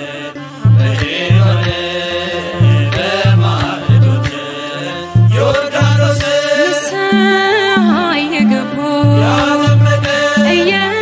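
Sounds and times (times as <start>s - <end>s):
voices singing slow chant: 0.0s - 11.0s
deep drum beats: 0.7s - 11.0s.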